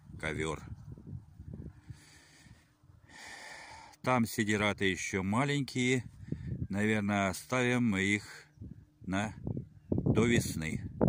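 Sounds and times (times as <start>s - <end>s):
faint breathing: 1.6s - 4.0s, 6.1s - 6.7s.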